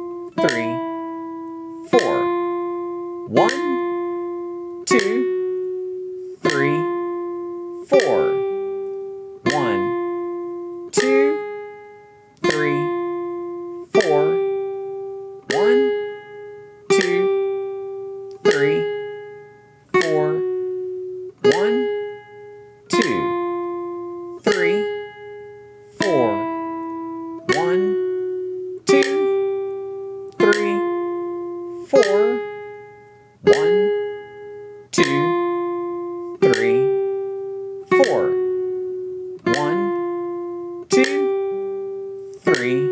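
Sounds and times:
classical guitar slow melody: 0:00.0 - 0:42.9.

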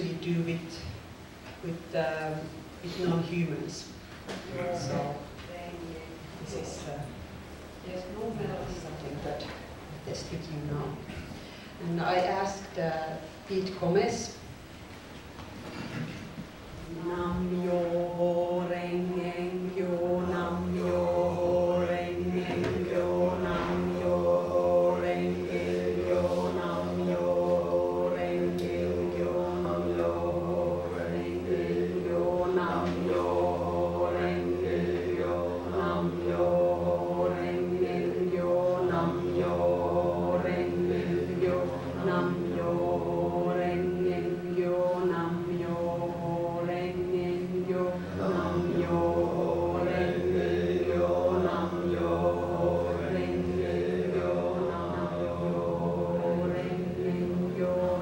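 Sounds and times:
woman chanting: 0:00.0 - 0:01.0, 0:01.6 - 0:07.2, 0:07.8 - 0:11.2, 0:11.8 - 0:14.4, 0:16.8 - 0:58.0
steady low drone: 0:16.8 - 0:58.0.

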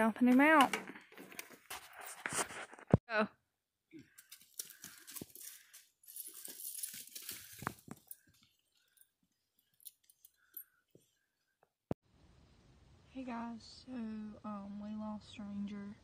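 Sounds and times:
rustling and crunching on ground: 0:04.2 - 0:09.0.

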